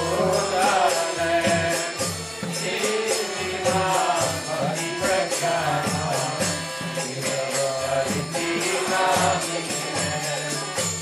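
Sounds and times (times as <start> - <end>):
voices chanting: 0.0 - 10.8
hand cymbals ringing: 0.0 - 11.0.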